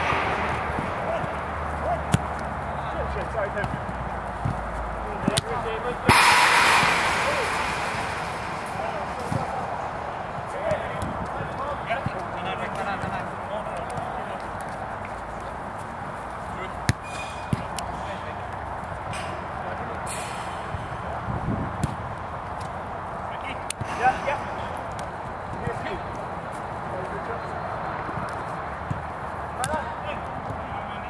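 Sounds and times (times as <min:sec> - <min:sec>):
sharp knock: 0:06.1 - 0:10.9
steady low rumble: 0:06.1 - 0:11.6.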